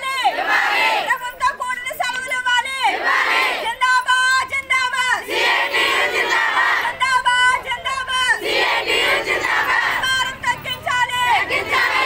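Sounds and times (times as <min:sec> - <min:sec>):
woman shouting slogans: 0:00.0 - 0:12.0
crowd chanting in unison: 0:00.2 - 0:01.1, 0:02.8 - 0:03.7, 0:05.2 - 0:06.9, 0:08.2 - 0:10.3, 0:11.0 - 0:12.0.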